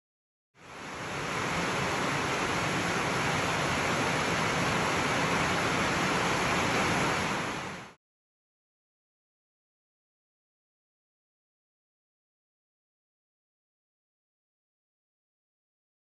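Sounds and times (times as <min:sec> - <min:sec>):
steady rushing hiss: 0:00.6 - 0:08.0.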